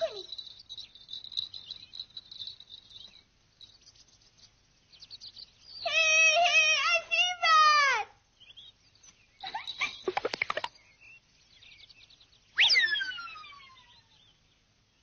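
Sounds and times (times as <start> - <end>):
swooping whistle: 12.6 - 14.1.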